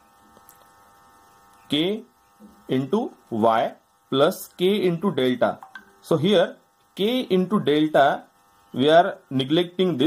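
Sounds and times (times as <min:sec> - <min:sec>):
faint electrical hum: 0:00.0 - 0:10.0
man speaking: 0:02.7 - 0:08.2.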